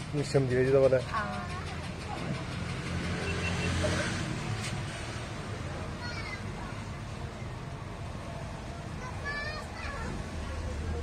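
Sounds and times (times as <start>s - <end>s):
vehicle engine rumbling: 0.0s - 11.0s.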